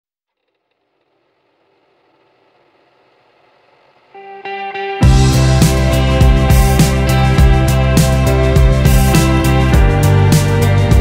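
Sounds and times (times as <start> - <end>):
small machine whirring: 0.3 - 4.5.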